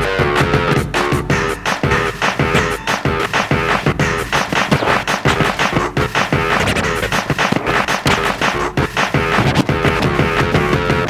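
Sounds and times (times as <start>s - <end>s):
turntable scratching: 0.0s - 11.0s.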